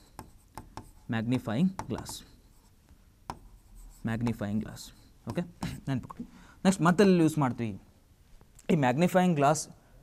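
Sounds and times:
stylus scratching on board: 0.0s - 1.1s
stylus tap: 0.1s - 1.0s, 1.7s - 2.2s, 2.9s - 3.5s.

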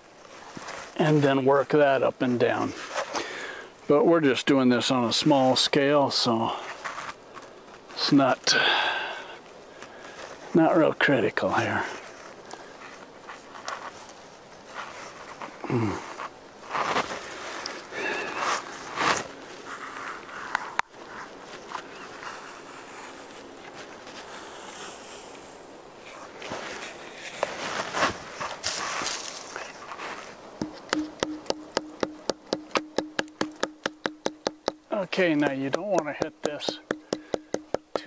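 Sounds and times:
light knocks on bark: 30.6s - 38.0s.

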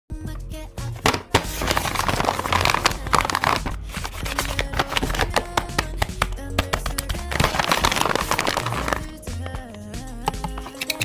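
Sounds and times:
background music with held notes: 0.1s - 11.0s
paper bag crinkling: 1.0s - 9.2s.

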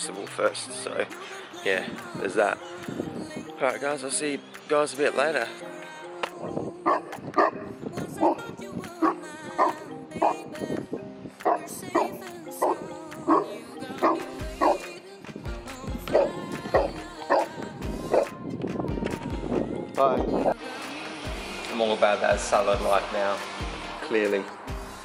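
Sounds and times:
background music with bass beat: 0.0s - 25.0s
dog barking: 6.8s - 7.6s, 8.2s - 8.4s, 9.0s - 10.4s, 11.4s - 14.8s, 16.1s - 17.5s, 18.1s - 18.4s.

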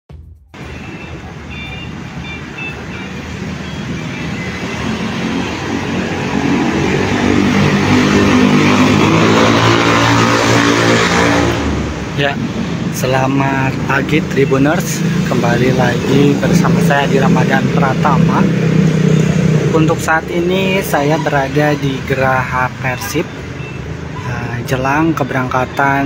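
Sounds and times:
street traffic passing: 0.5s - 26.0s
vehicle engine approaching: 0.6s - 26.0s.

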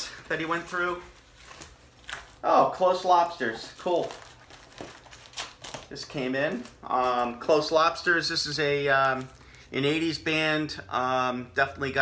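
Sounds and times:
packaging crinkling and rustling: 0.1s - 7.8s, 8.4s - 10.0s.

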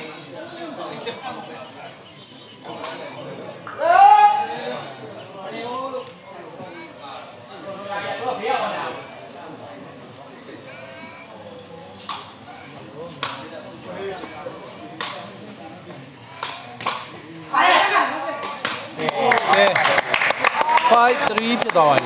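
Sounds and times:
voices: 0.0s - 22.0s
crowd shouting: 2.1s - 5.8s, 17.4s - 21.6s
ball being kicked sharp smacks: 15.0s - 15.4s
people clapping: 18.4s - 22.0s.

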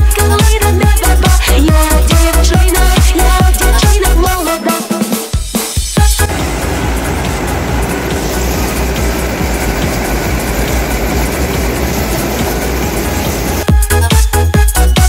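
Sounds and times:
electronic dance music: 6.2s - 13.7s
round baler running: 6.2s - 13.7s
tractor diesel engine: 6.2s - 13.7s.

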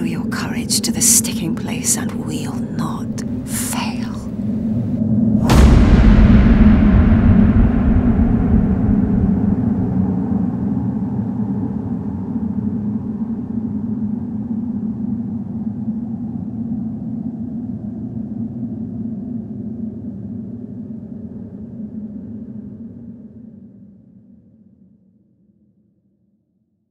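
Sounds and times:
low rumbling drone: 0.0s - 24.8s.

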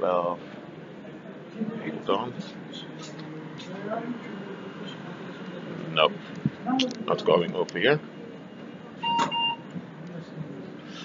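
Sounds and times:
electronic beep: 9.0s - 9.6s.

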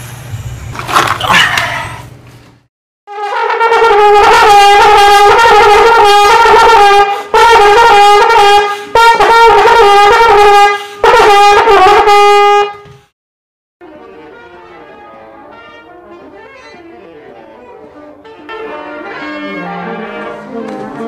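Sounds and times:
trombone playing jazz runs: 3.1s - 12.9s, 13.8s - 21.0s.

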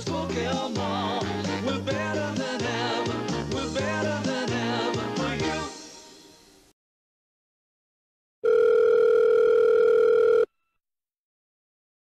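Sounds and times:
telephone ringback tone: 8.4s - 10.5s.

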